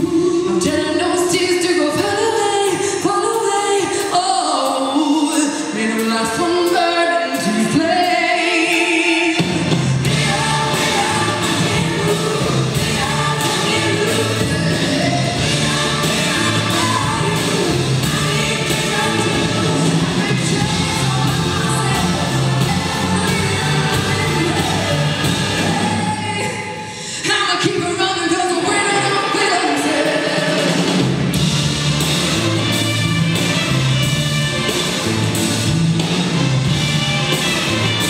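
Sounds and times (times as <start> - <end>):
orchestra playing pop arrangement: 0.0 - 38.0
choir singing: 10.0 - 26.6, 29.3 - 30.9.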